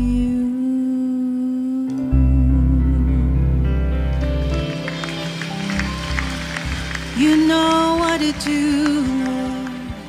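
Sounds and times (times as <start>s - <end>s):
slow worship music: 0.0s - 10.0s
deep bass note: 2.1s - 4.7s.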